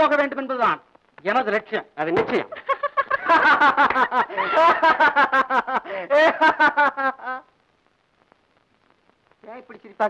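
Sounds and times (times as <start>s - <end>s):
man and woman laughing: 2.5s - 7.5s.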